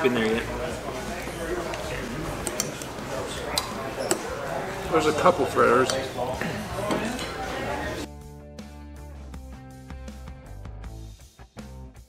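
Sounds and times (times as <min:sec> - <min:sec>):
murmur of voices: 0:00.0 - 0:08.1
cutlery clinking on dishes: 0:05.8 - 0:07.6.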